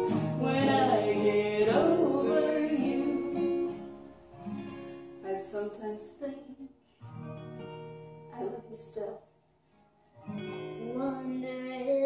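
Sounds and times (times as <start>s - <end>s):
acoustic guitar strummed: 0.0s - 5.5s, 7.0s - 8.9s, 9.7s - 12.0s
woman and girl singing: 0.3s - 3.7s, 5.2s - 6.7s, 10.7s - 12.0s.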